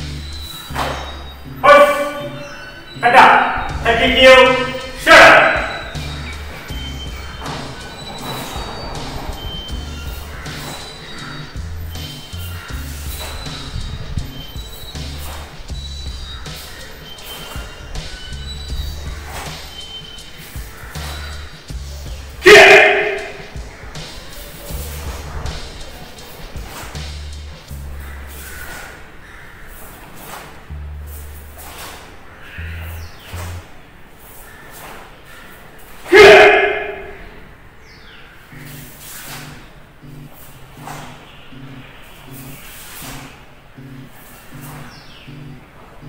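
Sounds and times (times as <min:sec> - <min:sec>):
sharp movement sounds: 0:00.0 - 0:37.2, 0:38.5 - 0:46.0
person shouting: 0:01.6 - 0:02.3, 0:03.0 - 0:05.9, 0:22.4 - 0:23.4, 0:36.1 - 0:37.2.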